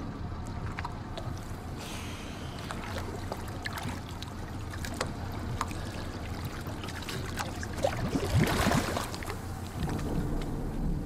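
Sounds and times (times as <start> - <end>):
water splashing against hull: 0.0 - 11.0
boat motor idling: 9.0 - 11.0.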